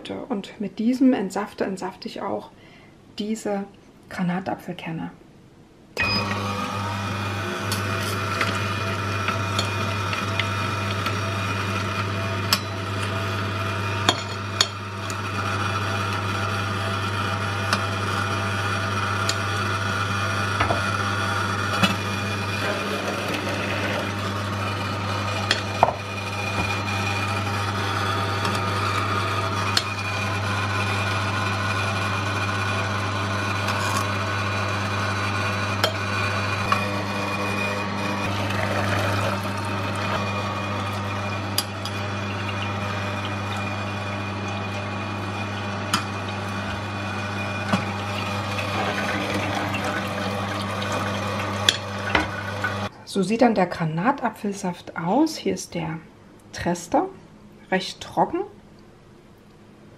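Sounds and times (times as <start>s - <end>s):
juicer grinding: 6.0s - 52.9s.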